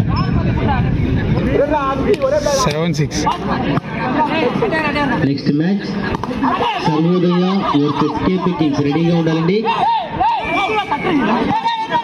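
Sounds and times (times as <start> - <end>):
voices calling out and talking: 0.0 - 12.0.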